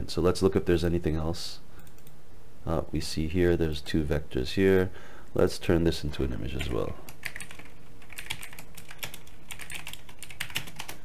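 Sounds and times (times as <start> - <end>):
typing on computer keyboard: 7.1 - 11.0.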